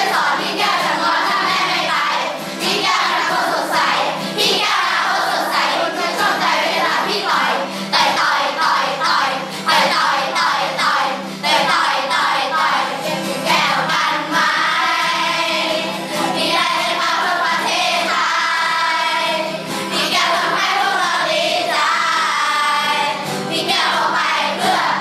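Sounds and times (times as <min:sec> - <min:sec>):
acoustic guitar: 0:00.0 - 0:25.0
children's choir singing: 0:00.0 - 0:25.0.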